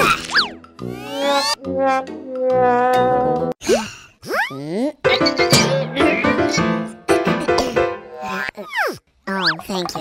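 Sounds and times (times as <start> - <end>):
background music: 0.0 - 3.5, 5.0 - 8.2.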